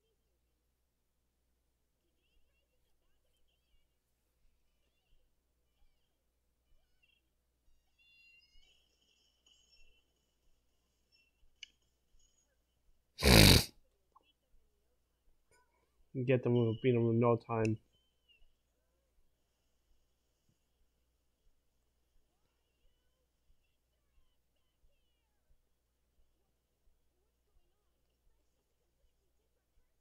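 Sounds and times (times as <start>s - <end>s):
faint high chirping glides: 4.6s - 12.8s
person snorting: 13.2s - 13.7s.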